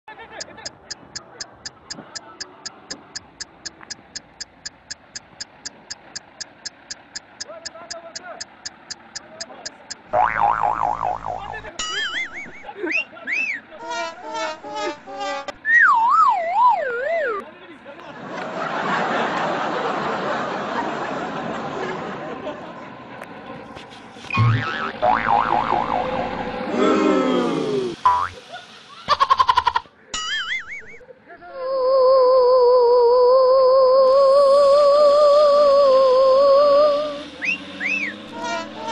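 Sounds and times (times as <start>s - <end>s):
rapid pulses: 0.4s - 11.7s
clock ticking: 0.4s - 12.6s
wobbling boing: 10.0s - 11.7s, 24.4s - 26.7s
rising whistle: 15.6s - 17.4s, 36.5s - 38.6s.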